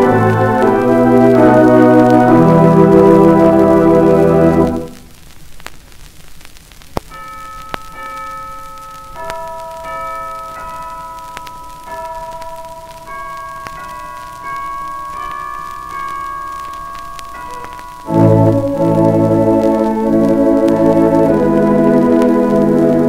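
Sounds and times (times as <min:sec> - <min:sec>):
organ music: 0:00.0 - 0:05.0, 0:17.3 - 0:23.0
record crackle: 0:00.0 - 0:23.0.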